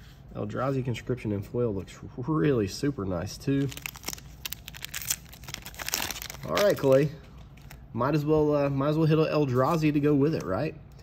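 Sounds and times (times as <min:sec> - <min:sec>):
foil wrapper crinkling and tearing: 0:03.6 - 0:07.8.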